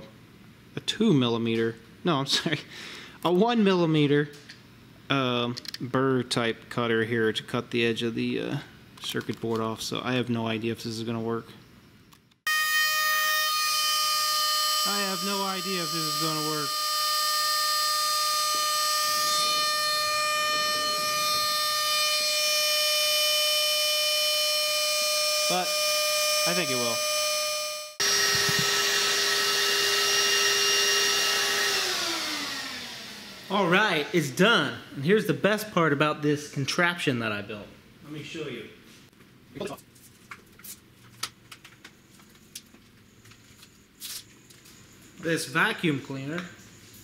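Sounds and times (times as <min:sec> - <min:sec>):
spindle motor whining: 0:12.5 - 0:34.0.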